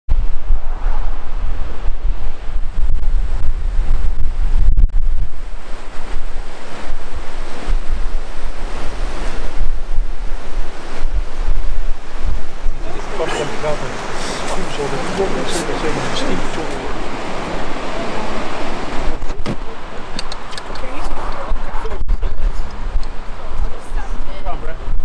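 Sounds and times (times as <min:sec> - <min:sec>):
wind buffeting microphone: 0:00.1 - 0:25.0
river rapids rushing: 0:10.2 - 0:21.8.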